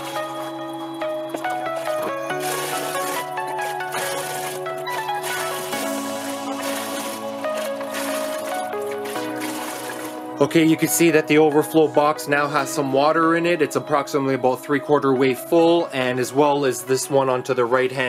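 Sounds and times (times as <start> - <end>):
sustained background music chords: 0.0 - 18.0.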